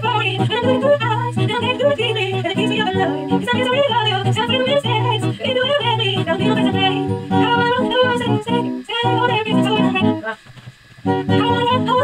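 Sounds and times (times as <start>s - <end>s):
woman singing: 0.0s - 10.4s, 11.1s - 12.0s
acoustic guitar chords: 0.0s - 12.0s.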